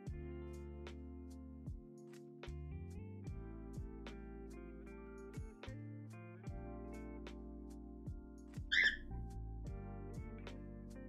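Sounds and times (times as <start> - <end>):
high-pitched squeak: 8.7 - 9.0.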